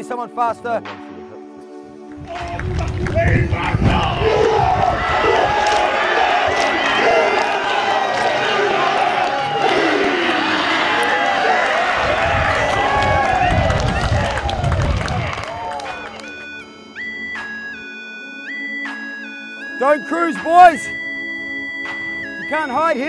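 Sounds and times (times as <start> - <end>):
men shouting in unison: 3.3 - 14.6
electronic music notes: 10.4 - 23.0.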